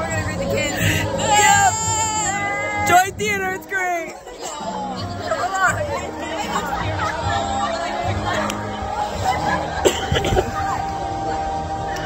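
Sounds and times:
girls wailing: 0.7s - 12.0s.

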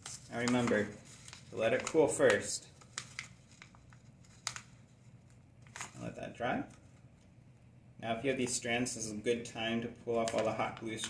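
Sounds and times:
paper crinkling: 0.0s - 7.3s, 10.1s - 11.0s.

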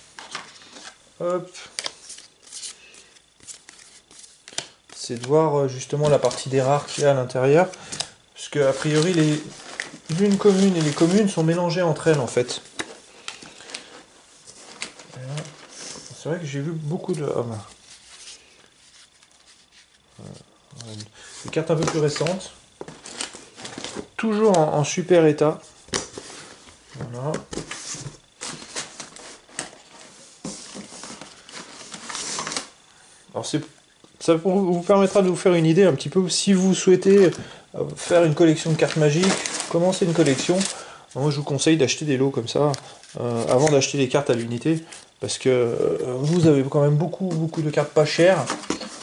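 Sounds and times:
cards rustling and tapping: 0.2s - 16.0s, 19.1s - 24.7s, 45.8s - 49.0s.

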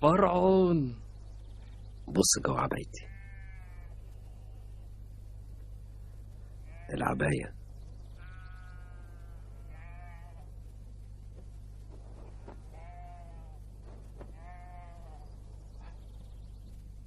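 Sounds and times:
steady low hum: 0.0s - 17.0s
sheep bleating: 3.0s - 4.8s, 6.6s - 7.2s, 8.2s - 10.5s, 12.5s - 13.6s, 14.2s - 16.0s.

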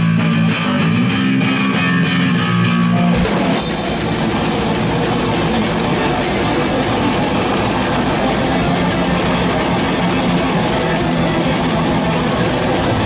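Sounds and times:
bass guitar: 0.0s - 13.0s
distorted electric guitars: 0.0s - 13.0s
fast drumming: 3.2s - 13.0s.

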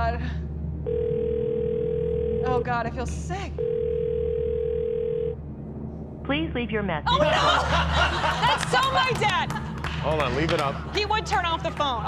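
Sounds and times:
telephone ringback tone: 0.9s - 2.6s, 3.6s - 5.4s.

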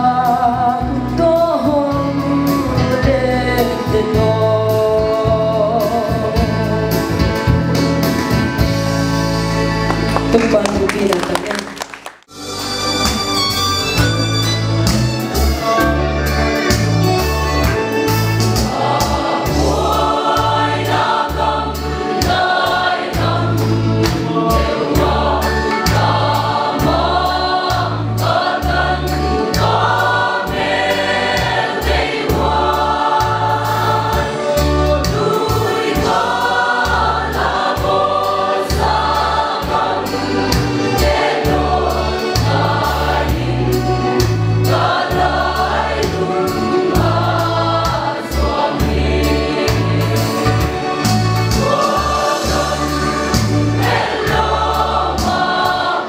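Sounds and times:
mixed choir singing a hymn: 0.0s - 8.8s, 15.3s - 56.0s.

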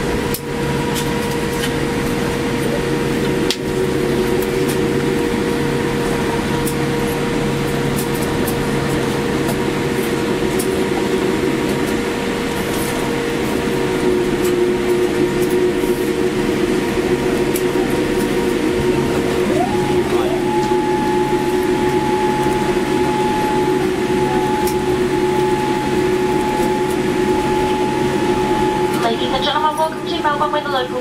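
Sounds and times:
engine and airflow rush: 0.0s - 31.0s
humming tones: 0.0s - 31.0s
tone rising in pitch: 19.4s - 29.3s.

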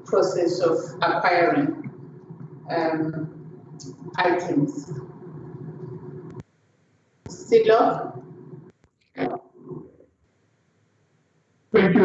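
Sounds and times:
low microphone hum: 0.0s - 6.4s, 7.3s - 10.0s, 11.8s - 12.0s.

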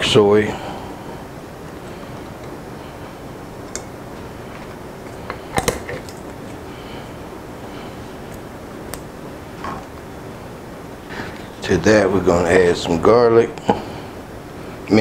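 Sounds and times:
steady background hum: 0.0s - 15.0s.

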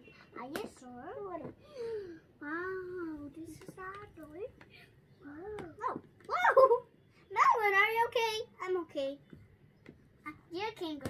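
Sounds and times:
young children talking: 0.0s - 9.2s.

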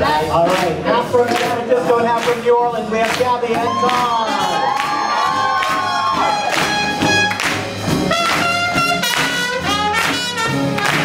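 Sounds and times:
swing band playing: 0.0s - 11.0s
crowd cheering and whooping: 3.6s - 7.4s.

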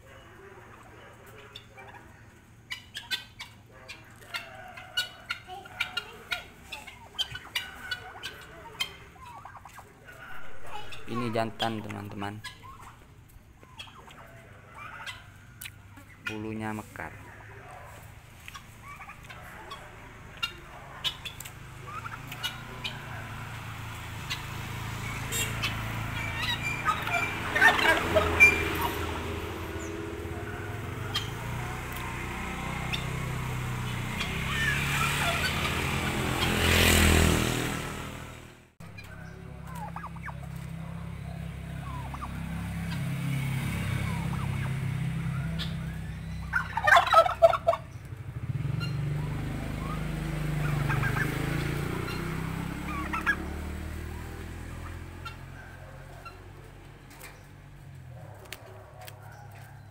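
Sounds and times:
turkeys gobbling: 0.0s - 37.9s, 38.8s - 57.5s, 58.1s - 59.9s.

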